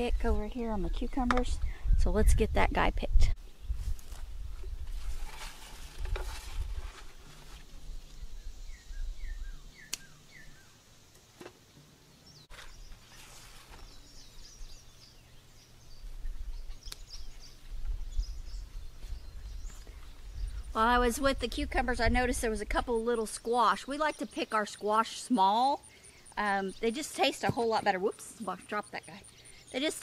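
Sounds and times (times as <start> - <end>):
wind rumble on microphone: 0.0 - 7.0, 15.9 - 23.3
vines rustling: 3.7 - 8.3, 12.4 - 15.1
stem snapping: 9.9 - 10.1.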